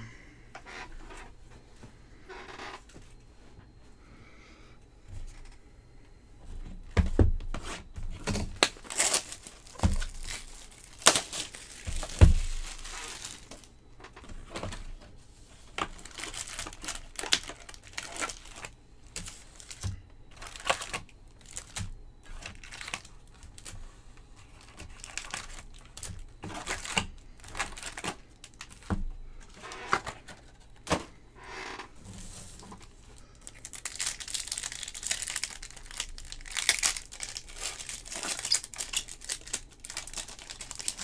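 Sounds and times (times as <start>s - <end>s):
card pack wrappers crinkling and tearing: 8.2s - 13.8s, 15.7s - 23.8s, 24.4s - 31.0s, 32.5s - 41.0s.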